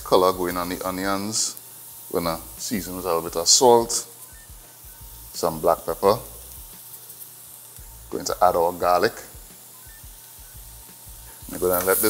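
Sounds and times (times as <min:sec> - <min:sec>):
onion sizzling in oil: 0:00.0 - 0:12.0.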